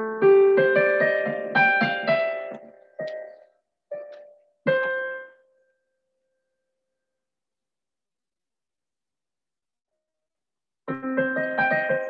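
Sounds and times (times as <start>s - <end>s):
piano notes: 0.0s - 5.4s, 10.9s - 12.0s.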